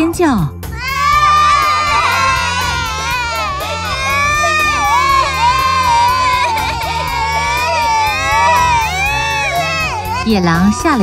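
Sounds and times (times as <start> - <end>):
low background music: 0.0 - 11.0
cartoon goats screaming: 0.8 - 11.0.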